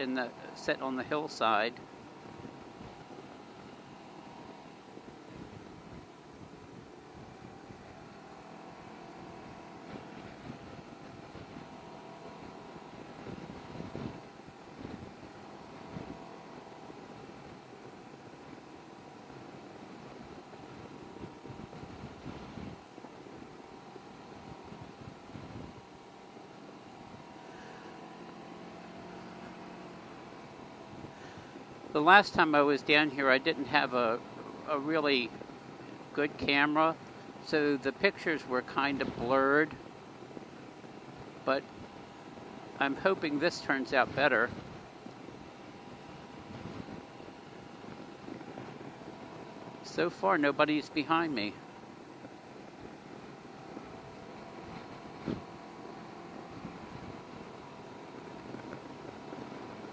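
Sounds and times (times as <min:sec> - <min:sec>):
motorcycle engine cruising: 0:00.0 - 0:59.9
road and wind noise: 0:00.0 - 0:59.9.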